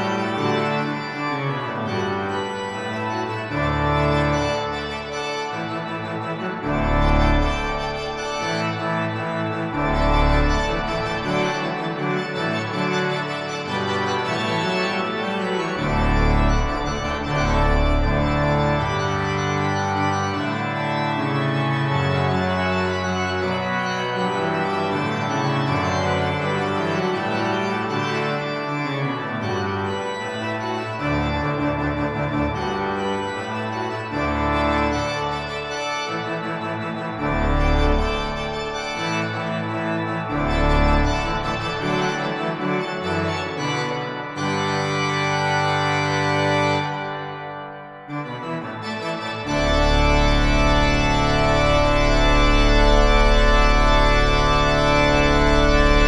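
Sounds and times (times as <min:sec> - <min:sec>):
deep organ pedal bass notes: 0:00.0 - 0:56.0
organ playing loud fanfare chords: 0:00.0 - 0:56.0.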